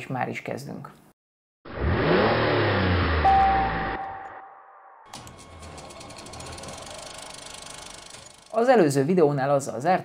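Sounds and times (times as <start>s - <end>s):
rapid mechanical rattle: 5.1s - 9.0s.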